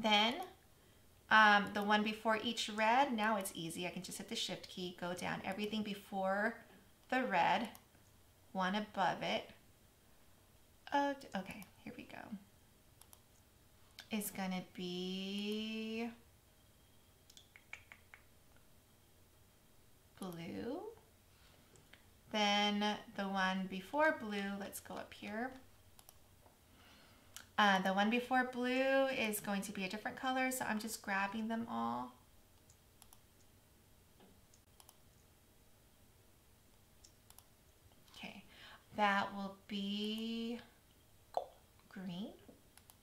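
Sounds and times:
faint computer mouse clicks: 26.0 - 26.2, 32.6 - 33.5, 34.5 - 35.0, 37.0 - 37.5, 42.8 - 43.0.

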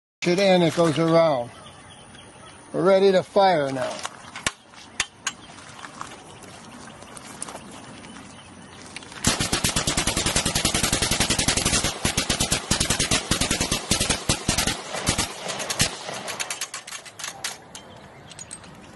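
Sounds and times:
rifles firing rapidly: 9.2 - 17.4.

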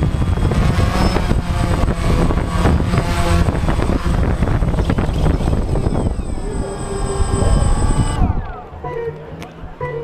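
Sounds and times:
drone propellers whining: 0.0 - 9.5.

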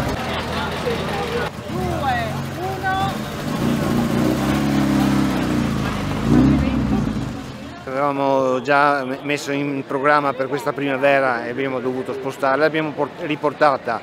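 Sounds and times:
car engine running: 0.0 - 7.8
voices: 0.0 - 14.0.

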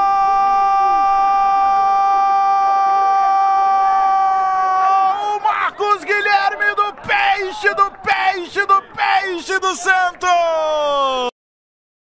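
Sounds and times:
fast excited commentary: 4.9 - 11.3.

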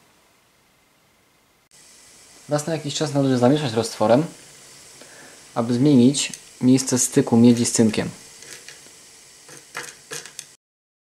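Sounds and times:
scratchy rattle of granules: 6.6 - 10.6
glass rod scraping in beaker: 8.4 - 8.8.

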